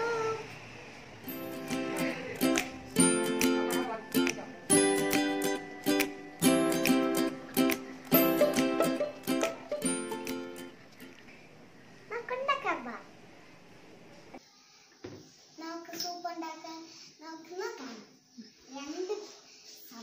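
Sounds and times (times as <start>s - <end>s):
strummed string chords: 1.3s - 10.8s.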